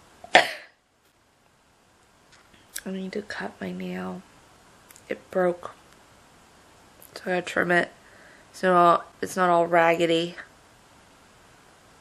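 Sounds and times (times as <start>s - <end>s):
woman coughing: 0.3s - 0.8s.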